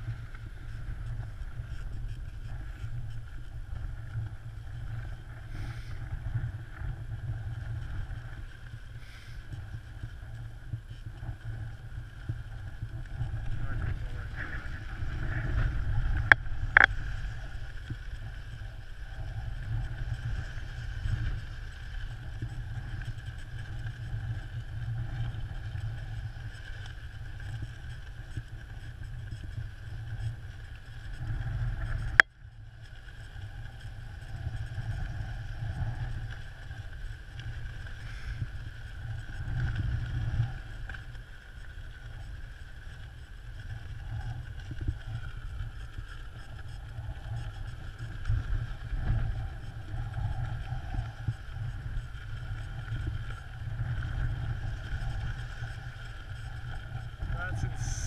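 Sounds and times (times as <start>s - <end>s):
wind buffeting microphone: 0.0s - 32.2s
faint steady whine: 0.0s - 58.0s.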